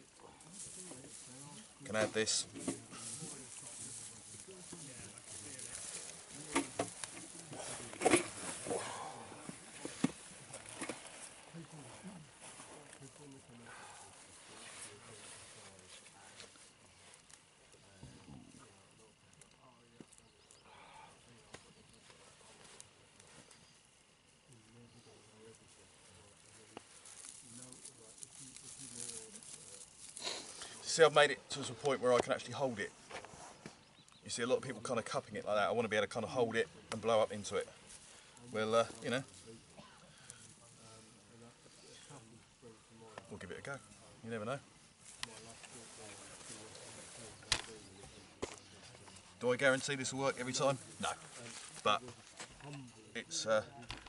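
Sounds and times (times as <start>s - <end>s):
dry grass rustling and crackling: 0.0s - 53.2s.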